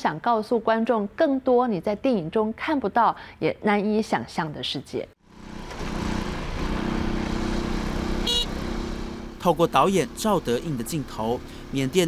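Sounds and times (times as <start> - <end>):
motorcycle engine running: 5.2 - 12.0
short high beep: 8.3 - 8.5.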